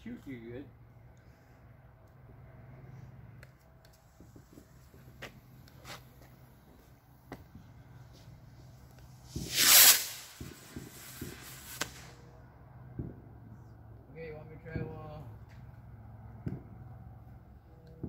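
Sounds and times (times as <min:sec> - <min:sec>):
firework pops and crackles: 0:03.4 - 0:06.3, 0:07.2 - 0:12.3
firework hissing: 0:08.1 - 0:12.3.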